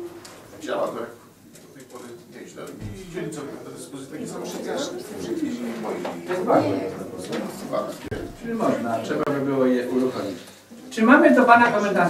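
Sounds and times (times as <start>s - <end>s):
low voices murmuring: 0.0s - 10.9s.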